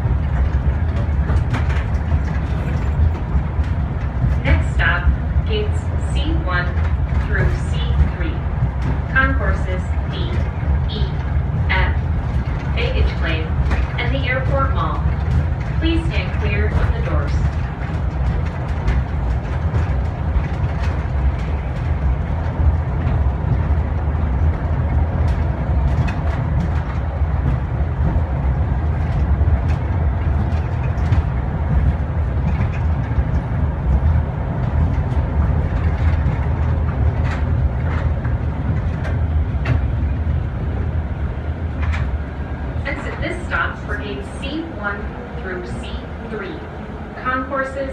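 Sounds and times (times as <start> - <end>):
tram running low rumble: 0.0 - 47.9.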